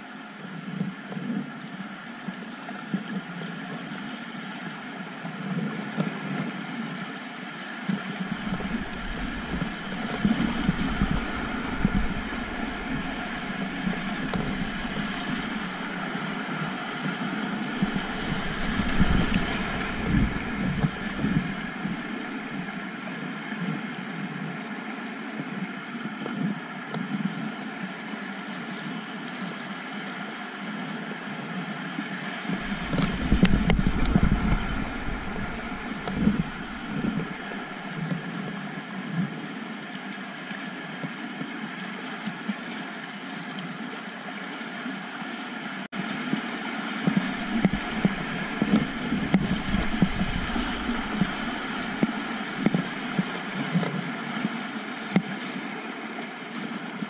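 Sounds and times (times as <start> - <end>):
paddle splashes: 8.2 - 22.9, 32.4 - 38.2, 46.0 - 56.7
low rumbling buffets: 8.2 - 23.0, 32.5 - 38.1, 47.0 - 53.8
whitewater rapids rushing: 8.3 - 23.0, 32.5 - 38.0, 46.4 - 55.1.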